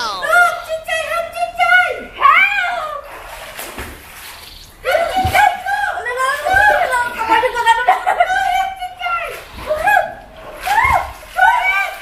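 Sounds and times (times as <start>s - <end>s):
high-pitched voice calling out: 0.0s - 0.4s
pool water splashing: 1.7s - 12.0s.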